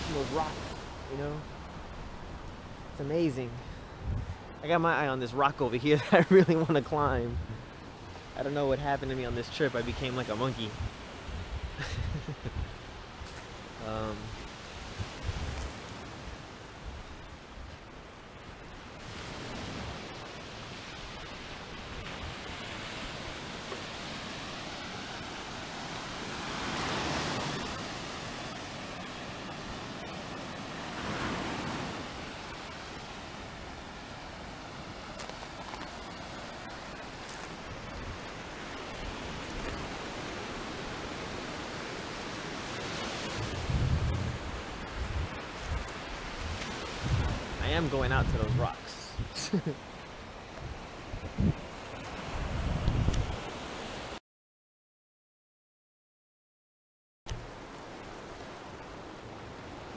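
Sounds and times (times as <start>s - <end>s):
surf washing onto beach: 0.0s - 1.4s, 18.4s - 54.2s.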